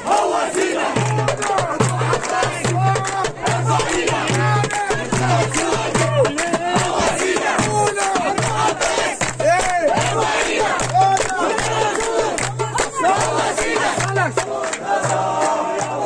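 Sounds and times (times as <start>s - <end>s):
crowd shouting and chanting: 0.0s - 16.0s
sharp claps: 0.1s - 16.0s.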